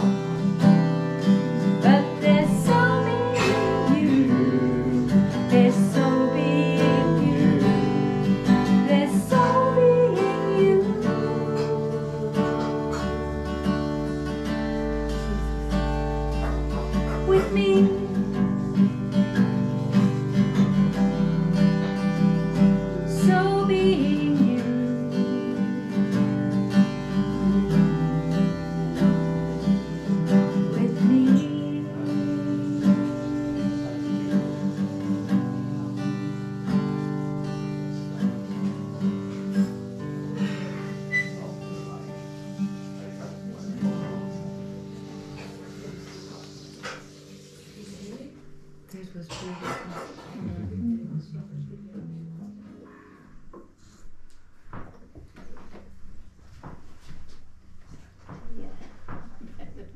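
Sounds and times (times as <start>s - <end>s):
acoustic guitar strumming chords: 0.0s - 48.9s
woman singing: 1.6s - 13.4s, 16.9s - 20.1s, 22.6s - 36.4s.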